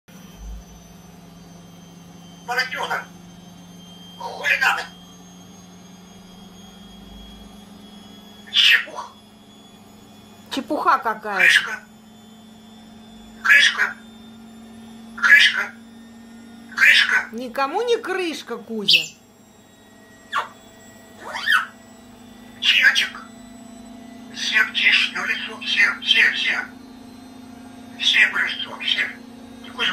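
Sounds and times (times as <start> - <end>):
steady low hum: 0.1 - 29.9
parrot whistling: 2.4 - 3.1, 4.2 - 5.0, 8.4 - 9.2, 11.3 - 11.9, 13.4 - 14.0, 15.2 - 15.8, 16.7 - 17.3, 18.8 - 19.2, 20.2 - 20.6, 21.2 - 21.8, 22.6 - 23.3, 24.3 - 26.7.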